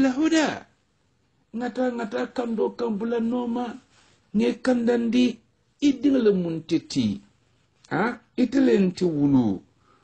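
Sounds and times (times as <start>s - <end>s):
man talking: 0.0s - 0.8s, 1.5s - 9.8s.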